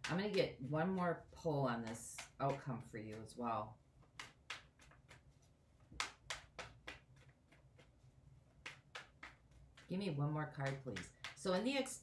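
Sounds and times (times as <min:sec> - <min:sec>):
cards shuffling: 0:04.0 - 0:11.9.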